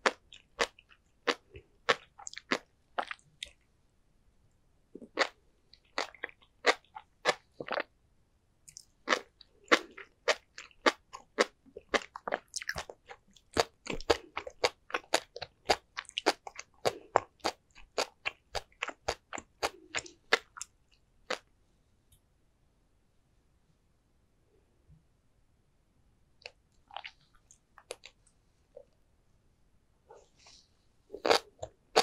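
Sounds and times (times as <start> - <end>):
chewing with sharp little pops: 0.0 - 3.6, 5.0 - 7.9, 8.7 - 21.5, 31.2 - 32.0.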